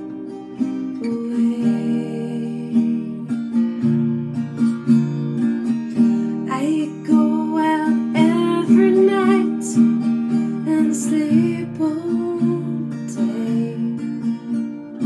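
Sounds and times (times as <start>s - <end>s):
woman singing slow melody: 0.0s - 3.7s, 6.4s - 15.0s
acoustic guitar strummed in chords: 0.0s - 15.0s.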